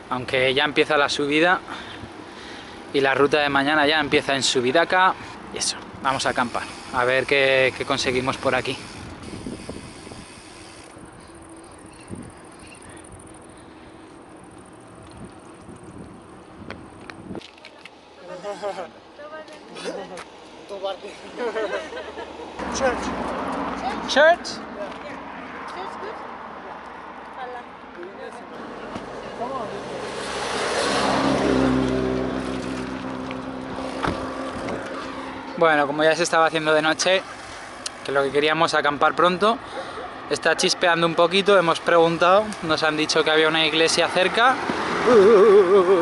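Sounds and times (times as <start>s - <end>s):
bicycle rolling on paved road: 3.7s - 19.6s, 26.8s - 39.8s, 40.6s - 44.6s.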